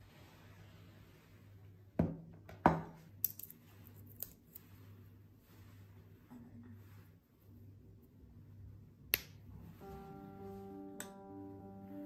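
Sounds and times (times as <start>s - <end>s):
soft music with sustained notes: 9.8s - 12.0s.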